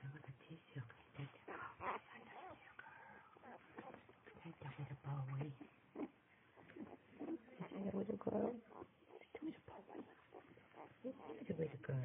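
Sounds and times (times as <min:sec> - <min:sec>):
puppies grunting and squeaking: 0:01.2 - 0:04.5, 0:05.3 - 0:12.0.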